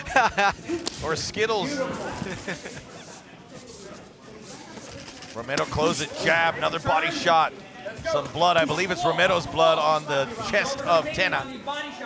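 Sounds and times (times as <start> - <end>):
men laughing softly: 0.0 - 0.9, 2.0 - 3.3.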